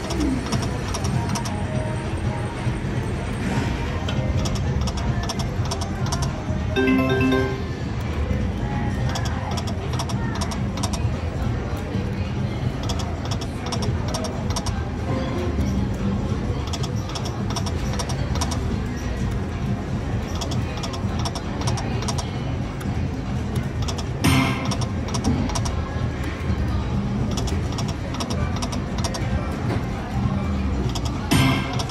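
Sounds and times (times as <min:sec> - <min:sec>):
slot machine game music: 0:06.7 - 0:08.1
casino floor din: 0:06.8 - 0:07.8.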